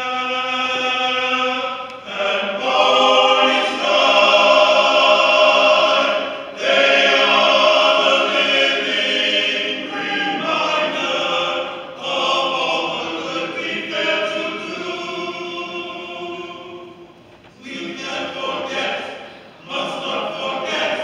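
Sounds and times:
men's choir singing in harmony: 0.0s - 21.0s.

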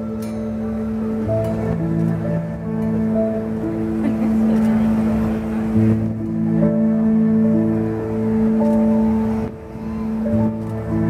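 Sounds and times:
slow music with held notes: 0.0s - 11.0s.

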